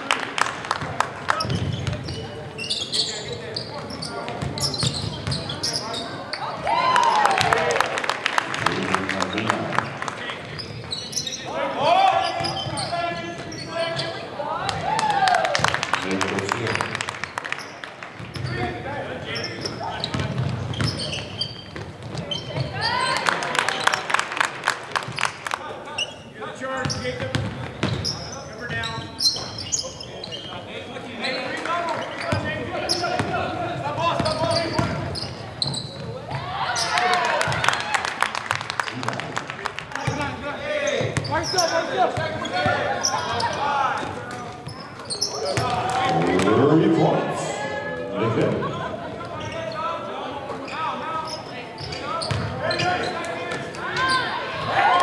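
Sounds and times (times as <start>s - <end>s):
basketball bouncing on court: 3.8s - 5.6s, 19.6s - 22.8s, 26.8s - 28.2s, 34.2s - 36.4s, 52.2s - 52.6s
indistinct shouting and talking: 5.3s - 16.9s, 22.2s - 24.4s, 29.6s - 38.3s, 39.8s - 55.0s.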